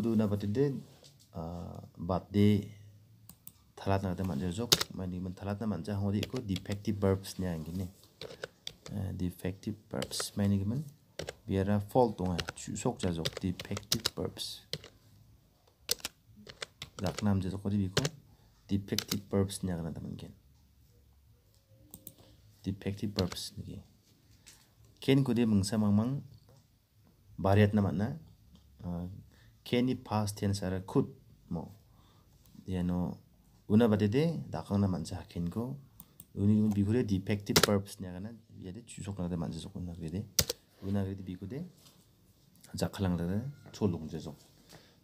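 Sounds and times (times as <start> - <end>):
person talking: 0.0 - 2.8, 3.7 - 15.0, 15.9 - 20.5, 21.7 - 23.9, 32.6 - 41.8, 42.6 - 44.4
sharp keyboard clicks: 4.7 - 5.0, 6.2 - 6.9, 8.2 - 9.0, 10.0 - 10.4, 11.2 - 11.5, 12.2 - 15.0, 15.9 - 17.3, 18.0 - 18.2, 18.9 - 19.3, 23.1 - 23.5, 40.4 - 40.6.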